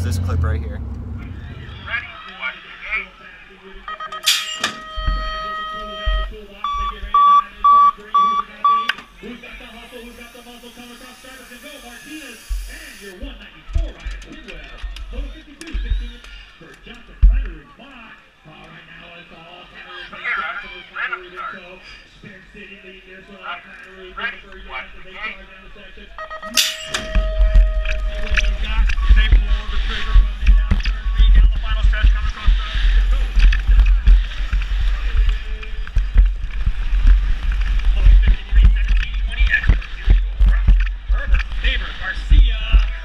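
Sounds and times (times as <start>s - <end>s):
low thumps: 0.0s - 2.2s, 27.0s - 43.0s
voices: 0.0s - 36.4s, 37.9s - 43.0s
short beeps: 3.9s - 9.0s, 26.2s - 30.1s
long electronic tone: 4.8s - 6.8s, 26.2s - 29.5s.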